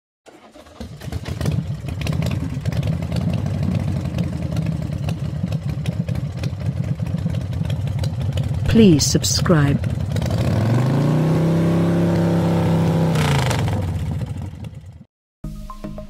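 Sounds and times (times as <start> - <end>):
engine low rumble: 0.8 - 15.1.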